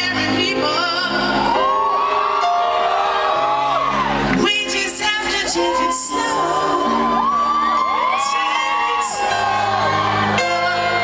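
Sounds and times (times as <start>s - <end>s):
woman singing: 0.0s - 1.8s, 4.3s - 11.0s
grand piano chords: 0.0s - 11.0s
audience whooping: 1.0s - 11.0s.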